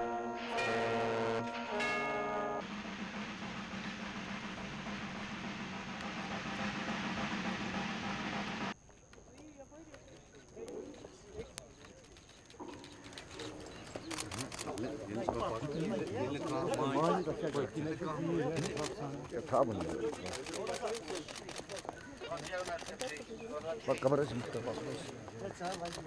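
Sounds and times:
brass band playing: 0.0 - 8.8
steady rushing noise: 2.6 - 8.8
murmur of voices: 9.3 - 26.0.

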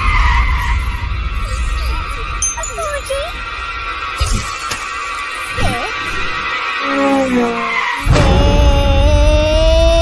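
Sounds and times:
downward sliding tone: 5.4 - 10.0.

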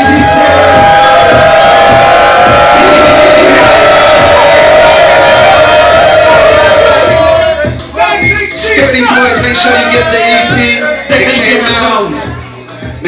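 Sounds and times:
crowd cheering: 0.0 - 8.4
live hip-hop music: 0.0 - 13.0.

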